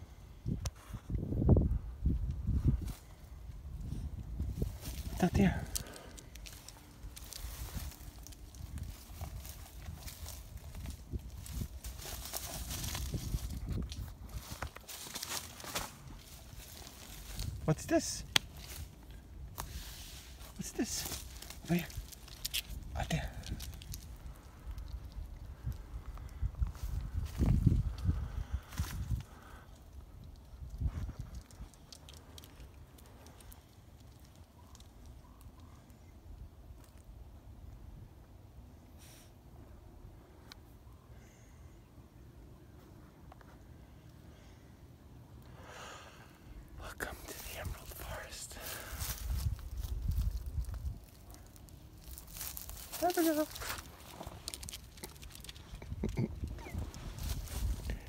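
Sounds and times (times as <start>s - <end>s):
scraping and rustling on bark: 2.6s - 17.6s, 18.2s - 25.7s, 47.0s - 58.0s.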